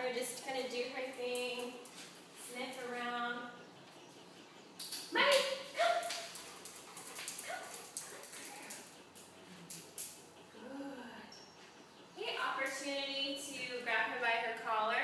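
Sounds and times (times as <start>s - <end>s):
woman calling a dog: 5.1s - 6.3s
dog sounds: 5.2s - 10.6s.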